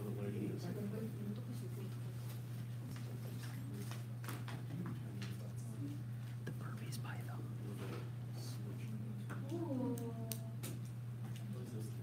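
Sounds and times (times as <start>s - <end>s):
steady low room hum: 0.0s - 12.0s
people whispering: 5.7s - 8.9s.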